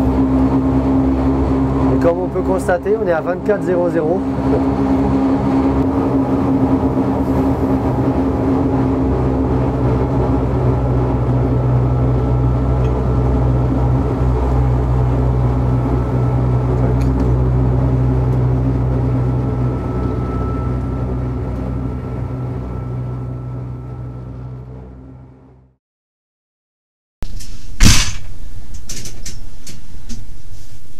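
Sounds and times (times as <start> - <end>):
railcar motors humming: 0.0 - 25.7.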